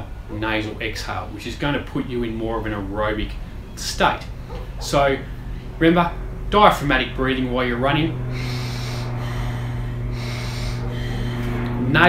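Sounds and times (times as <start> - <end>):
steady low hum: 0.0 - 12.0
man breathing through nose: 8.2 - 11.8.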